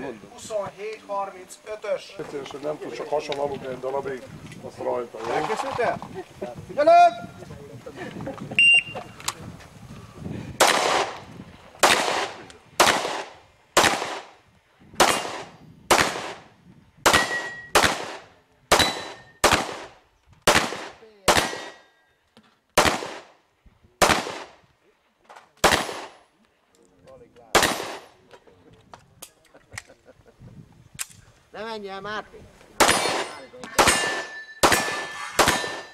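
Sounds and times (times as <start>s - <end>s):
pistol shots with ringing echo: 10.6s - 11.2s, 11.8s - 14.4s, 15.0s - 22.0s, 22.8s - 23.3s, 24.0s - 24.5s, 25.6s - 26.2s, 27.5s - 28.1s, 32.8s - 35.9s.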